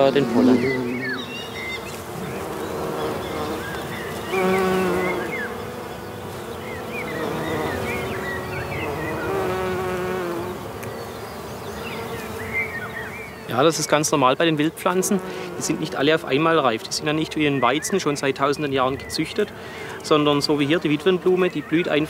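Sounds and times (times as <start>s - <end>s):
bees buzzing: 0.0s - 22.0s
faint high chirps: 0.4s - 2.4s.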